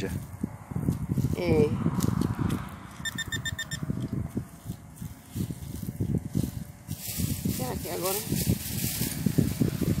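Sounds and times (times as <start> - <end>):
rapid high beeps: 3.0 - 3.8.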